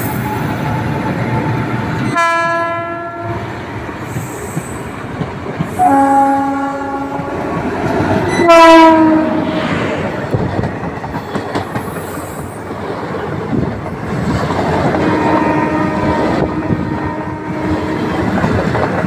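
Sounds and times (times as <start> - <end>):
train wheels rumbling on rail: 0.0 - 19.0
locomotive horn: 2.0 - 3.4, 5.7 - 7.6, 8.3 - 9.6, 15.0 - 18.2.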